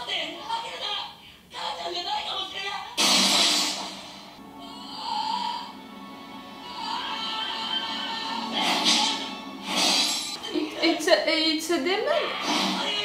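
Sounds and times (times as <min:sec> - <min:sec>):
dramatic soundtrack music: 0:03.9 - 0:10.5.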